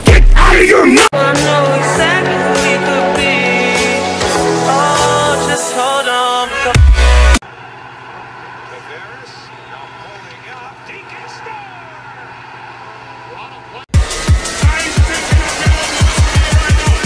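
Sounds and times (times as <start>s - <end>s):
electronic dance music: 0.0s - 7.4s, 13.9s - 17.0s
arena crowd noise: 7.4s - 13.9s.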